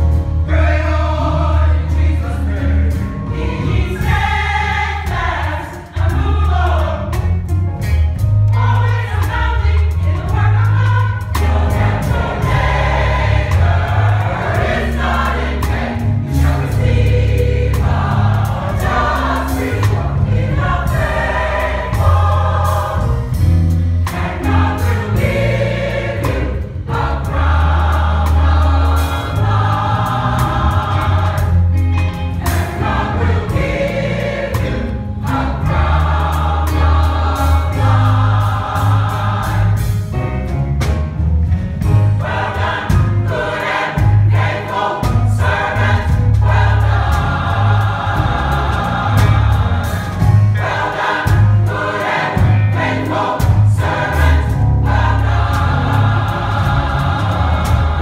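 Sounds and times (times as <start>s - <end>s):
gospel choir singing: 0.0s - 58.0s
low bass line: 6.0s - 43.4s, 45.1s - 51.7s, 52.4s - 58.0s.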